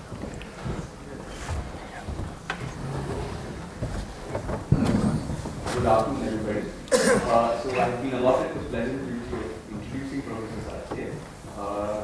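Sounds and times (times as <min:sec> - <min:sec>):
man speaking into a microphone: 0:05.7 - 0:12.0.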